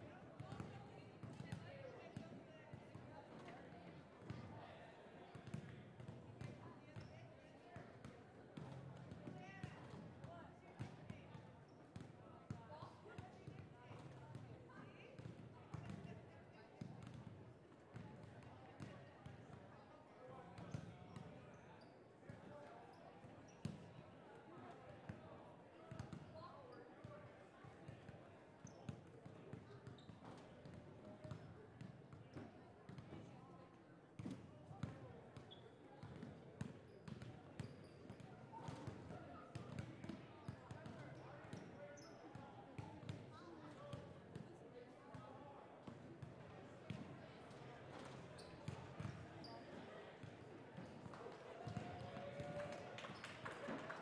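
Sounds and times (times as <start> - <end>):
people chattering: 0.0 - 54.0.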